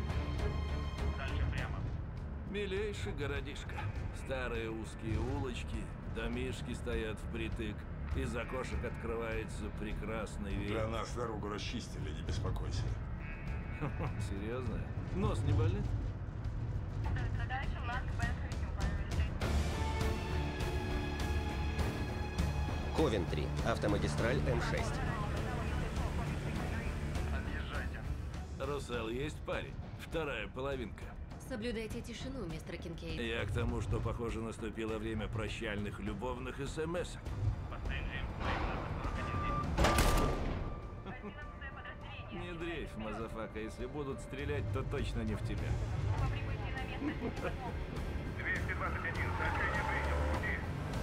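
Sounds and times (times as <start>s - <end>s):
orchestral film score: 0.0s - 51.0s
loud bang: 38.4s - 41.0s.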